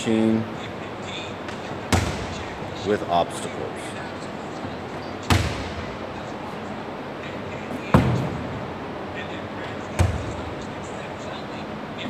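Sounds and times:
balls thudding on gym floor: 0:01.5 - 0:02.6, 0:05.3 - 0:06.0, 0:07.9 - 0:08.6, 0:09.9 - 0:10.6.

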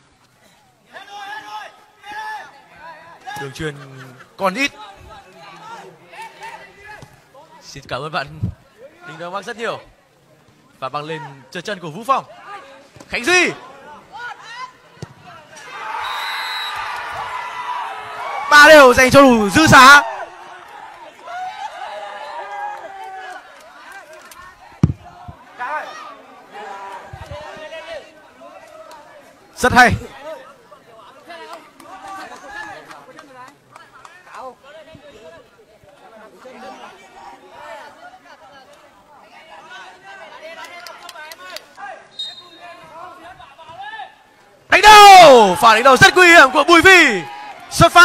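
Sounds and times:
distant shouting and chatter: 0:00.4 - 0:07.9, 0:08.5 - 0:48.0.

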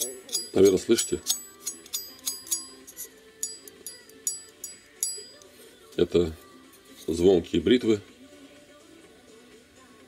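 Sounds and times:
high metallic ring: 0:00.0 - 0:05.5.

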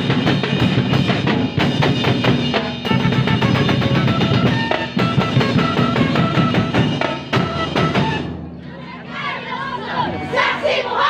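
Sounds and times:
crowd shouting a chant: 0:08.6 - 0:11.0.

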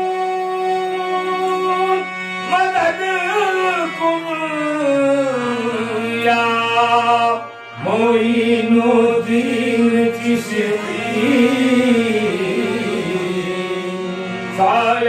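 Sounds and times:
man singing into a microphone: 0:00.0 - 0:15.0.

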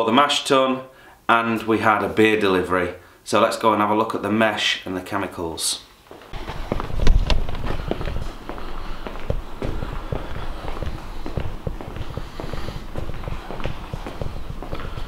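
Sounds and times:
footsteps on concrete: 0:06.1 - 0:15.0
handheld camera knocks and rumble: 0:06.3 - 0:15.0.

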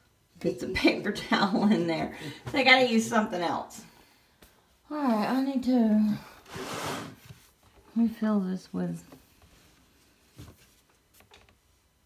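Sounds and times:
woman speaking: 0:00.4 - 0:03.9, 0:04.9 - 0:06.3, 0:07.9 - 0:09.2.

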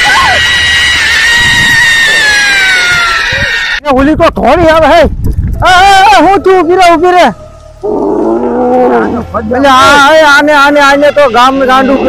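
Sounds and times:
wavering vocal roar: 0:07.3 - 0:09.4
low rough growl: 0:07.8 - 0:09.4.

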